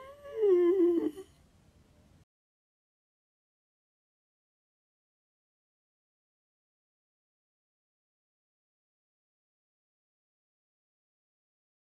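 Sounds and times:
man humming: 0.0s - 1.3s.

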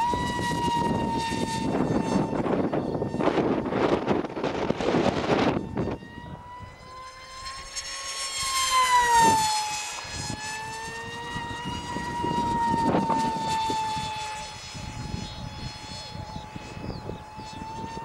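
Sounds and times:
model plane propeller whining: 0.0s - 18.0s.

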